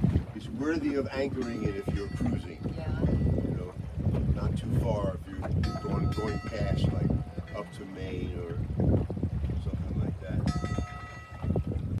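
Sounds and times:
water sloshing along boat hull: 0.0s - 12.0s.

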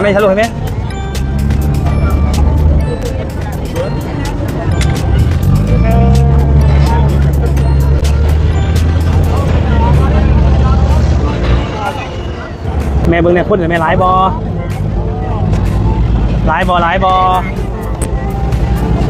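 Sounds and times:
passengers chattering: 0.0s - 19.0s
boat engine drone: 0.6s - 13.0s.

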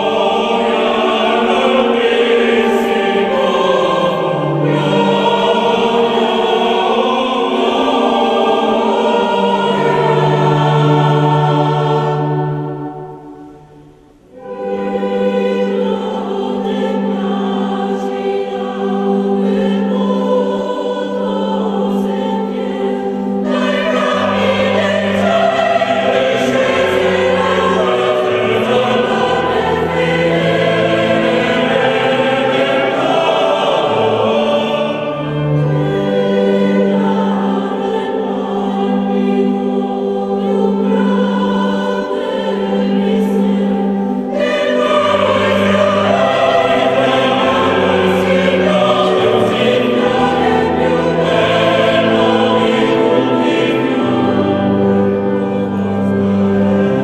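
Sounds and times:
choir singing held notes: 0.0s - 57.0s.

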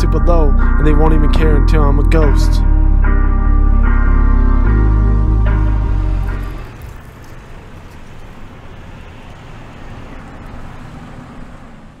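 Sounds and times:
car engine and tyre noise: 4.6s - 12.0s.

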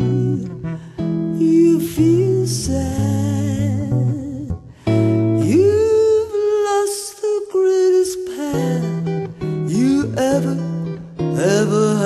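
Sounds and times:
guitar chords and sliding notes: 0.0s - 12.0s.

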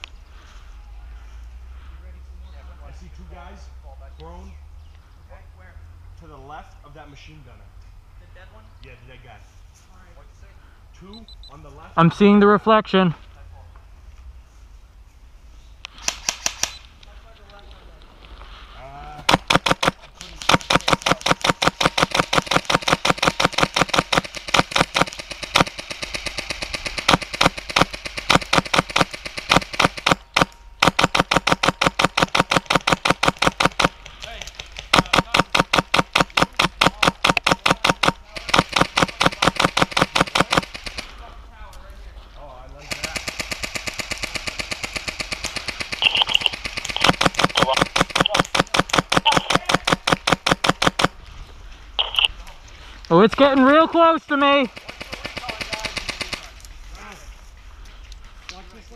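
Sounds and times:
airsoft guns firing full-auto: 19.3s - 41.1s, 42.8s - 51.2s, 54.4s - 56.6s.

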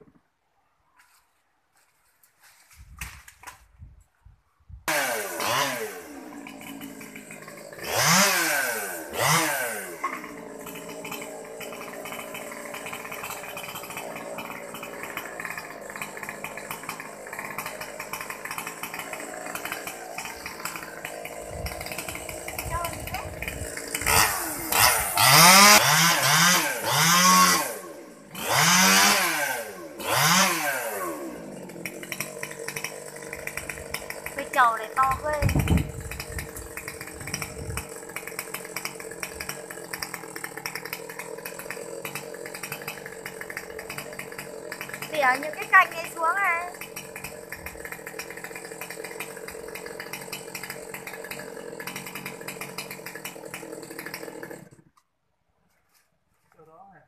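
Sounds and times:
chainsaw idling and revving: 4.8s - 55.0s.

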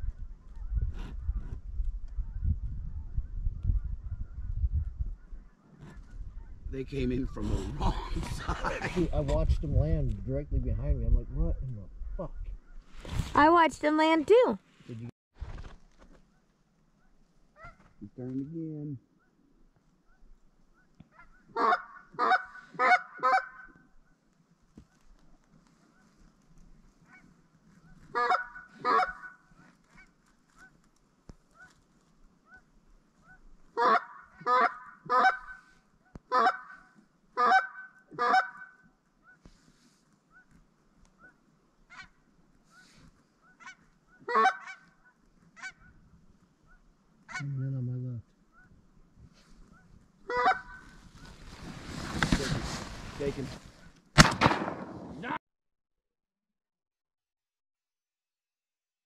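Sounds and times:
geese honking: 21.0s - 23.9s, 27.0s - 30.8s, 32.4s - 39.5s, 41.2s - 46.0s, 46.6s - 47.6s, 49.7s - 51.0s.

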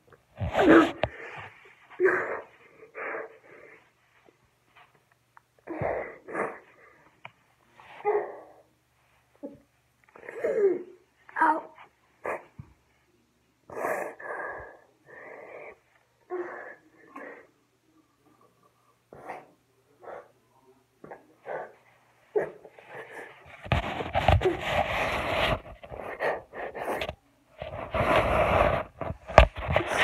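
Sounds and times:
person fake sobbing and whimpering: 0.5s - 1.3s, 1.9s - 3.4s, 8.0s - 8.7s, 9.4s - 12.5s.

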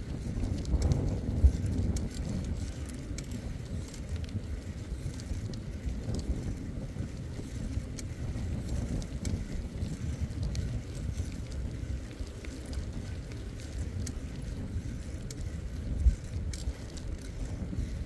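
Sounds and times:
bicycle tyre rolling on pavement: 0.0s - 18.0s
wind rumbling on microphone: 0.0s - 18.0s.

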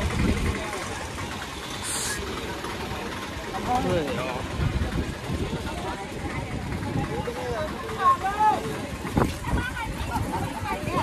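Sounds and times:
indistinct voices of passers-by: 0.0s - 11.0s
short hiss: 1.8s - 2.3s.

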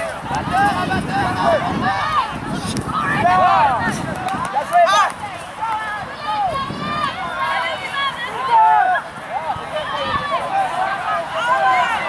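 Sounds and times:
people shouting: 0.0s - 12.0s.

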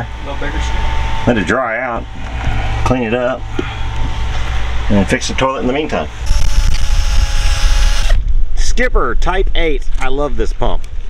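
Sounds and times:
wire wheel whirring: 4.0s - 8.2s.

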